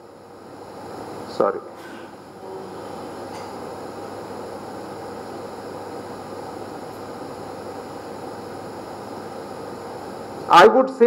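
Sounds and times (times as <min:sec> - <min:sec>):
ventilation hiss and hum: 0:00.0 - 0:11.0.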